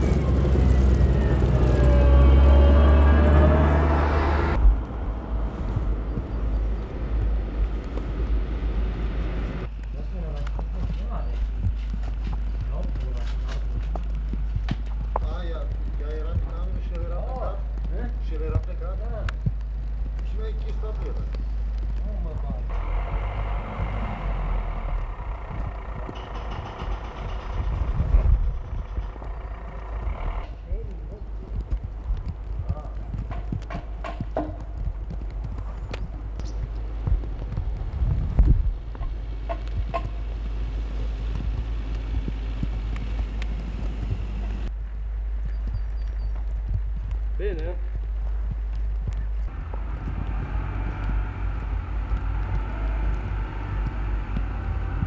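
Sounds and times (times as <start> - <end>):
steady low rumble: 0.0 - 55.0
scattered clicks and knocks: 9.6 - 44.8, 45.4 - 55.0
sharp knocks: 25.2 - 30.2, 32.4 - 35.1.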